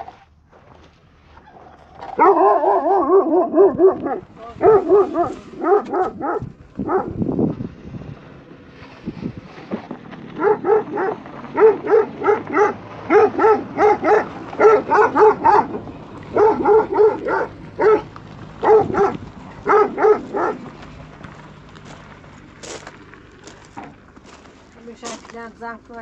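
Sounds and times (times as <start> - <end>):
dog barking: 2.1 - 7.2, 10.4 - 20.7.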